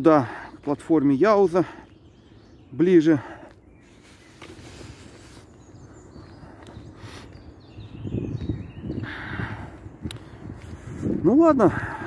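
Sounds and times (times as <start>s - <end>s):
quiet outdoor background noise: 0.0s - 12.0s
footsteps on asphalt: 0.1s - 12.0s
rustle: 3.8s - 5.6s.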